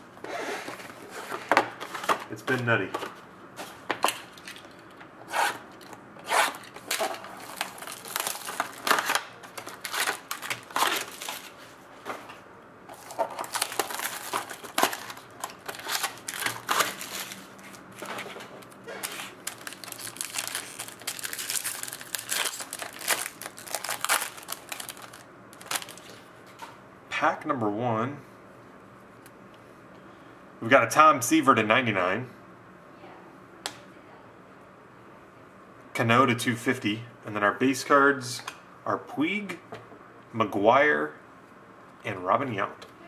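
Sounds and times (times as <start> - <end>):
foil packs crinkling: 6.5 - 11.7, 12.9 - 26.2.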